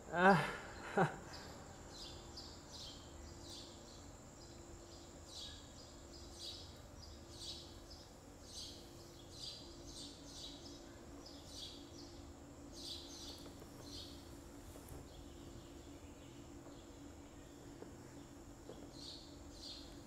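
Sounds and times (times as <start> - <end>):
high insect drone: 0.0 - 20.0
low steady hum: 0.0 - 20.0.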